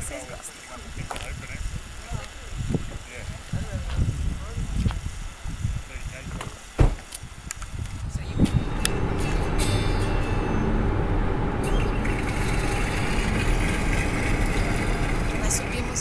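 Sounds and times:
car road and engine noise: 0.0 - 16.0.

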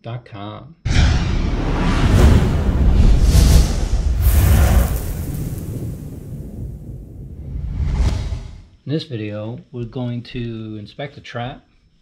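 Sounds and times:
deep rumble: 0.9 - 8.7
whooshing sweeps: 0.9 - 8.7.

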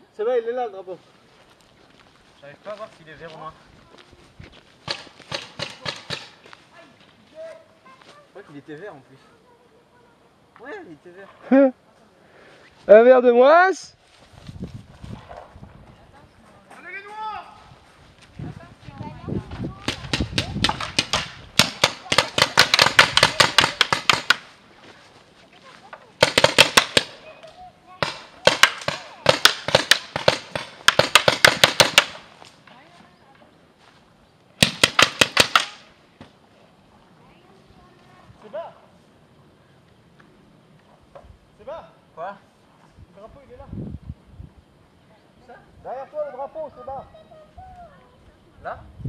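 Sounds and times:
paintball markers firing rapidly: 19.9 - 24.5, 26.2 - 27.2, 28.0 - 32.2, 34.6 - 35.9.

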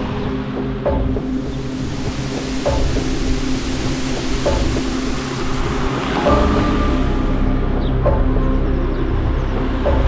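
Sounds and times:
cinematic background music: 0.0 - 10.0.

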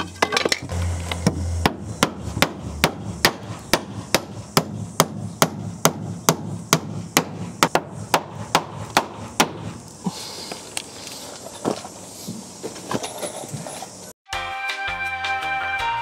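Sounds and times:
hammer striking a nail into wood: 1.2 - 9.7.

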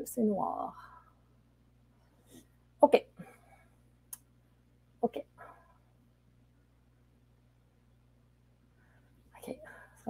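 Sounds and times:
woman speaking softly: 0.0 - 0.8, 5.0 - 5.4, 9.3 - 10.0
faint low hum: 0.0 - 10.0.

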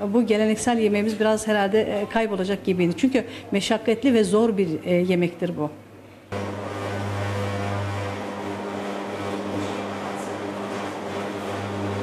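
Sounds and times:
electric mincer humming: 6.3 - 12.0.

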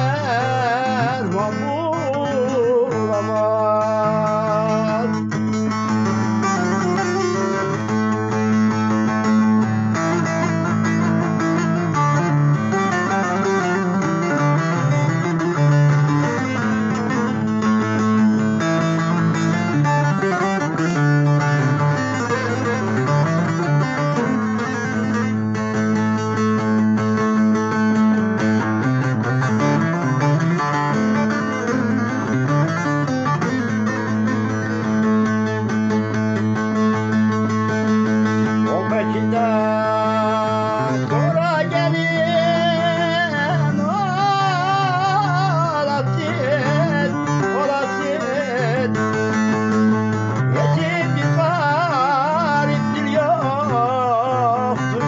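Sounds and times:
plucked string instrument melody: 0.0 - 55.0.

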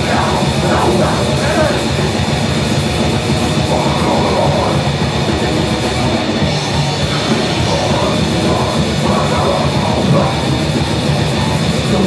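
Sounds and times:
distorted electric guitars: 0.0 - 12.0
fast drum kit with cymbals: 0.0 - 12.0.

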